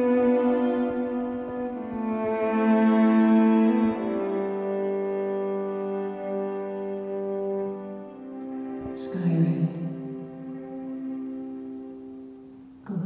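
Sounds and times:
electric violin long notes: 0.0 - 13.0
sustained chords: 0.0 - 13.0.

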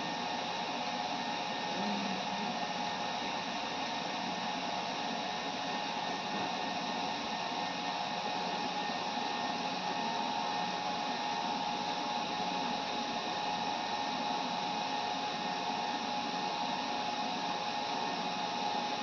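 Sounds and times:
faint steady whine: 0.0 - 19.0
server cooling fans running: 0.0 - 19.0.

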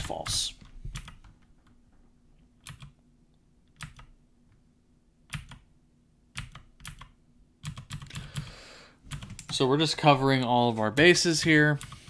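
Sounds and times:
computer keyboard typing: 0.2 - 1.4, 2.6 - 3.0, 3.7 - 4.1, 5.3 - 5.6, 6.4 - 8.5, 9.1 - 9.6, 11.4 - 12.0.

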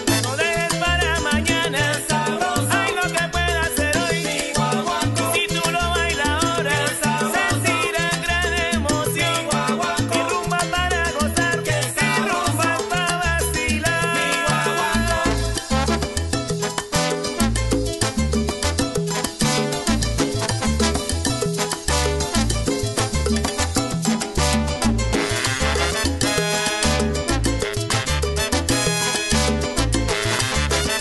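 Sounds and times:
bass line: 0.0 - 31.0
salsa band music: 0.0 - 31.0
percussion strikes: 15.0 - 31.0.

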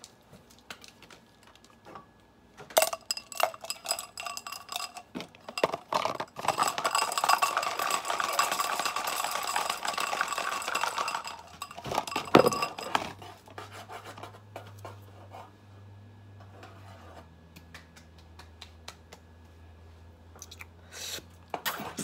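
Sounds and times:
markers rattling in a glass: 2.8 - 13.3.

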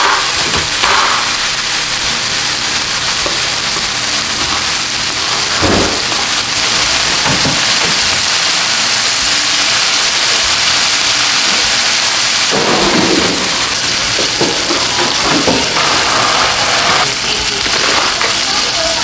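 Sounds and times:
chicken sizzling in oil: 0.0 - 19.0.

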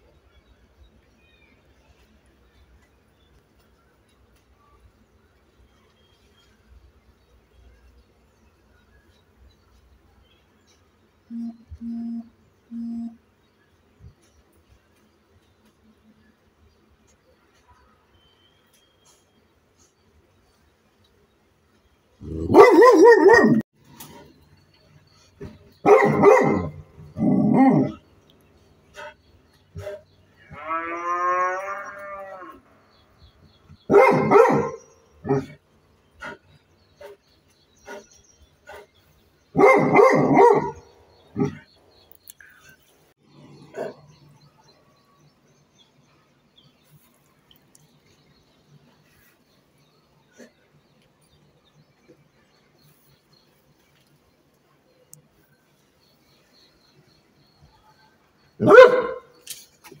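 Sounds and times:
dog barking: 22.3 - 23.6, 25.8 - 26.8, 33.9 - 35.6, 39.6 - 41.6, 43.7 - 44.0, 58.6 - 59.3.

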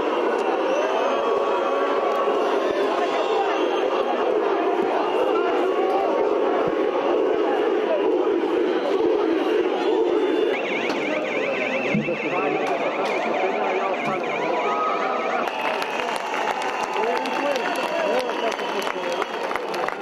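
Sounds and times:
crowd shouting: 0.0 - 20.0
warbling electronic siren: 7.0 - 18.3.

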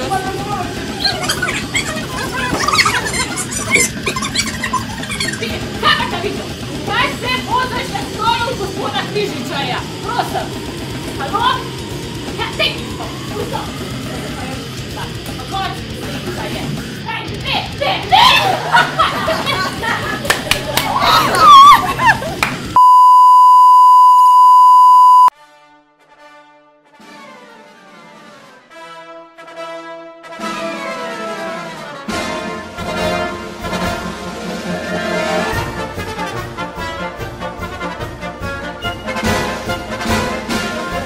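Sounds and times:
young people squealing and shrieking: 0.7 - 6.1, 17.8 - 18.9, 20.8 - 22.4
electronic bleep tone: 22.8 - 25.3.

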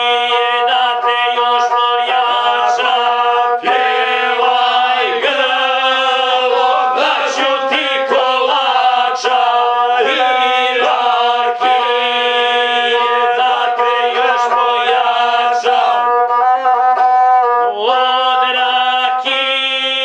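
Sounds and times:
person singing folk song: 0.0 - 20.0.

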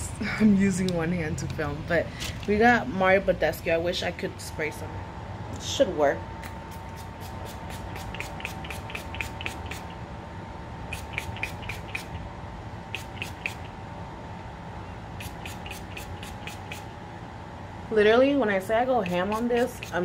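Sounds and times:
steady background hum: 0.0 - 20.0
spray bottle misting: 6.7 - 10.0, 10.9 - 12.2, 12.9 - 13.7, 15.2 - 16.9, 19.1 - 20.0.

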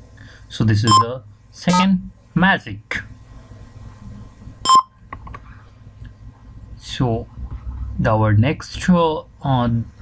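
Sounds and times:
short electronic beep: 0.9 - 1.1, 4.7 - 4.9.

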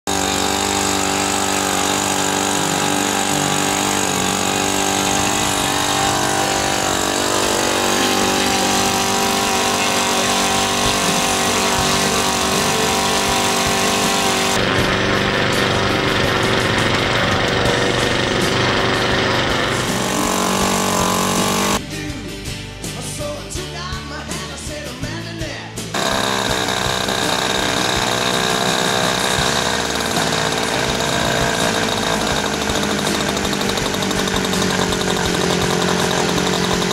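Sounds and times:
model aircraft engine drone: 0.1 - 21.8, 26.0 - 36.9.

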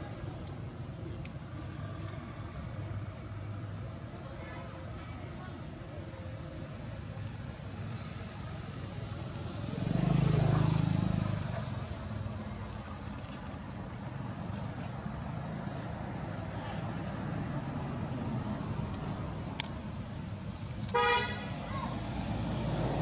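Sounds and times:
outdoor background noise: 0.0 - 23.0
vehicle engine passing by: 8.0 - 23.0.

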